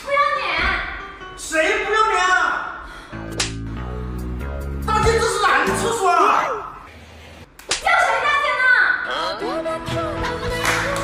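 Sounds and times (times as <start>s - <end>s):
sharp slap: 3.3s - 3.6s, 7.6s - 8.0s.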